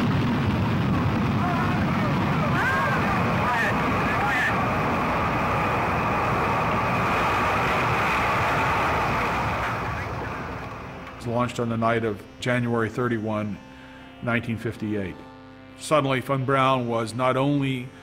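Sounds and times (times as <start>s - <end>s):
rocket engine roar: 0.0s - 15.4s.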